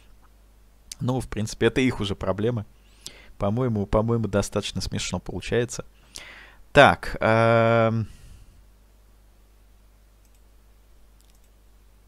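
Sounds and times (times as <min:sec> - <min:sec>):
low steady hum: 0:00.0 - 0:12.0
faint clicks: 0:10.2 - 0:10.5, 0:11.2 - 0:11.6.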